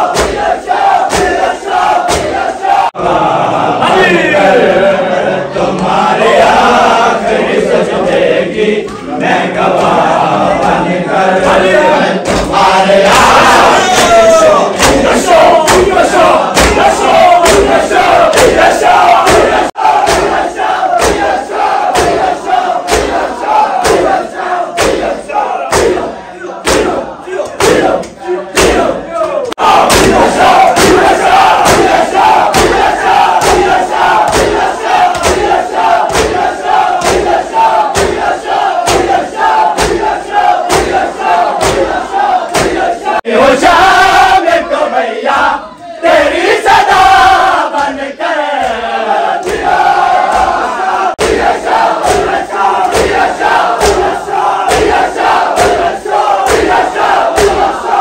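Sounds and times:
men chanting together: 0:00.0 - 0:58.0
hand slaps on chests: 0:00.1 - 0:02.5, 0:12.2 - 0:24.2, 0:24.8 - 0:42.9, 0:49.4 - 0:57.8.

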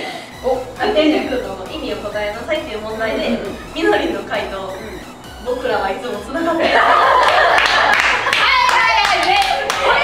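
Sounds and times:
women laughing: 0:06.5 - 0:10.0
women clapping rapidly: 0:07.2 - 0:10.0.

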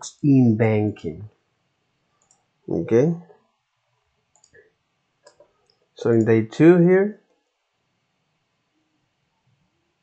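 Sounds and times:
person speaking: 0:00.0 - 0:01.3, 0:02.7 - 0:03.2, 0:06.0 - 0:07.1
computer mouse clicks: 0:02.2 - 0:02.4, 0:04.3 - 0:04.6, 0:05.2 - 0:05.5.

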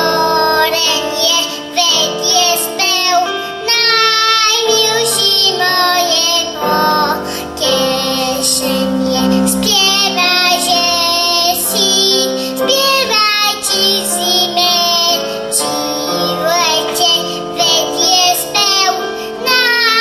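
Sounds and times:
girl singing a folk song: 0:00.0 - 0:20.0
instrumental accompaniment chords: 0:00.0 - 0:20.0.

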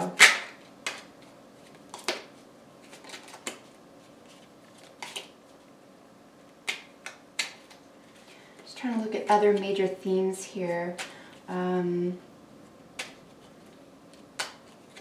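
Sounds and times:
cards being shuffled: 0:00.0 - 0:05.6, 0:06.6 - 0:08.7, 0:13.0 - 0:15.0.

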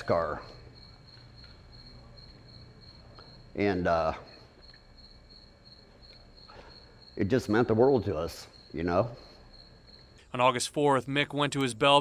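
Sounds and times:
insect chirping: 0:00.0 - 0:12.0
quiet background hum: 0:00.0 - 0:12.0.

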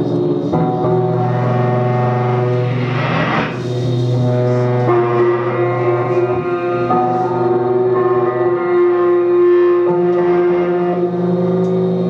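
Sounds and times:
electric guitar drone: 0:00.0 - 0:12.0
low hum: 0:00.4 - 0:07.4
rough noisy swell: 0:00.6 - 0:07.2.

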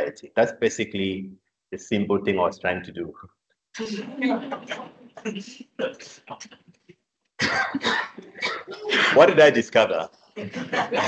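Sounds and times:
man's voice: 0:00.0 - 0:03.3, 0:09.0 - 0:11.0
man coughing: 0:07.4 - 0:09.4.

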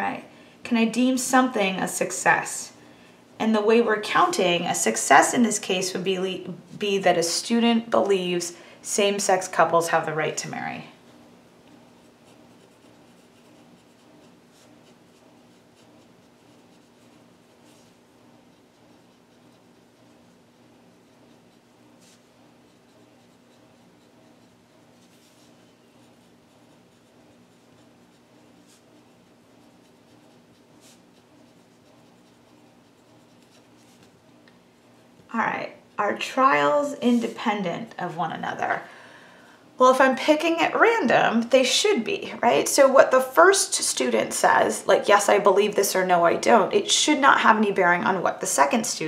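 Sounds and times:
steady low hum: 0:00.0 - 0:49.0
pen scratching on paper: 0:11.9 - 0:35.2.

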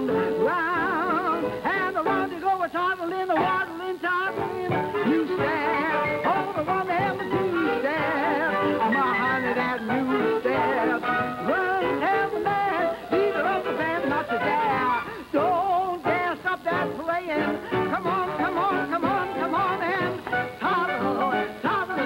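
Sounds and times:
dixieland jazz band playing: 0:04.3 - 0:15.2, 0:16.1 - 0:22.0.

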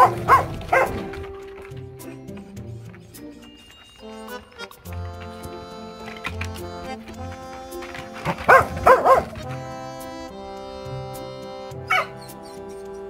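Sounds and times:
dog barking: 0:00.0 - 0:01.2, 0:08.3 - 0:09.6, 0:11.9 - 0:12.6
background music: 0:00.0 - 0:13.0.

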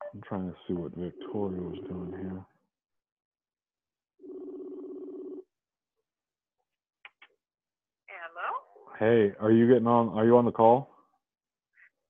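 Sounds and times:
telephone buzzing tone: 0:04.2 - 0:05.4.

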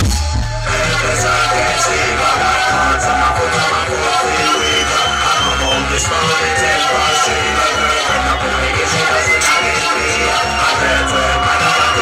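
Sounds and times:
drum and bass music: 0:00.0 - 0:12.0
heavy bass line: 0:00.0 - 0:12.0.

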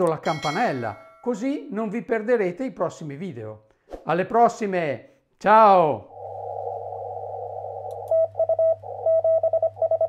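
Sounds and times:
low hum: 0:06.0 - 0:10.0
receiver hiss: 0:06.1 - 0:09.7
morse code tone: 0:08.1 - 0:10.0.

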